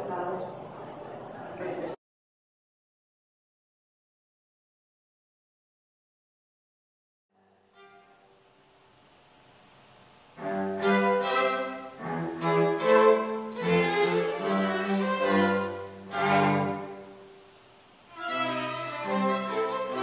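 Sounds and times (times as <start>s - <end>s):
string trio playing slowly: 7.4s - 8.3s, 10.4s - 17.5s, 18.1s - 20.0s.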